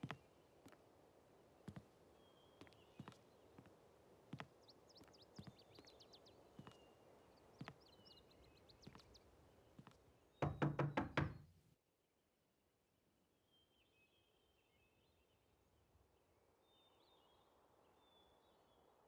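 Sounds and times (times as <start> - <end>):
fist knocking on wooden door: 10.4 - 11.5.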